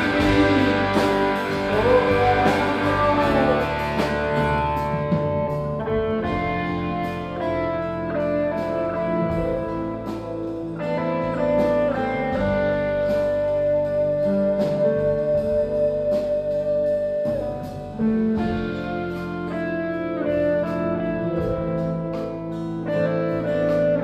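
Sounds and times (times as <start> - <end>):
acoustic guitar: 0.0 - 24.0
electric guitar lead lines: 0.0 - 24.0.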